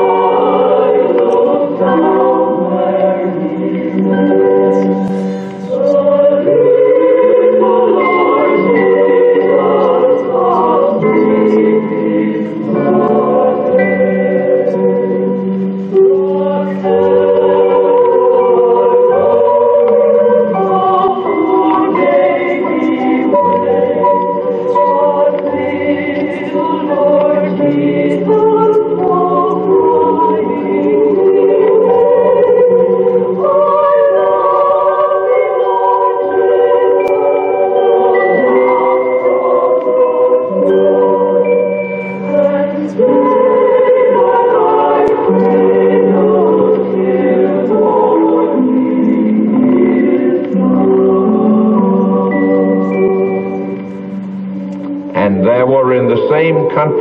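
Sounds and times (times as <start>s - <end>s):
choir singing long-held chords: 0.0s - 57.0s.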